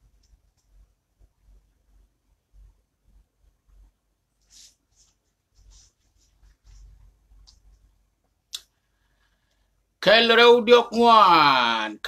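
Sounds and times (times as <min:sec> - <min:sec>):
soft rustles: 0:02.6 - 0:08.4.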